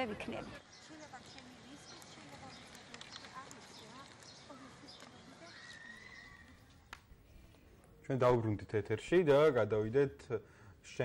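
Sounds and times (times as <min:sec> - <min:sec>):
distant voices: 0:00.0 - 0:10.0
small clicks and knocks: 0:01.3 - 0:05.2.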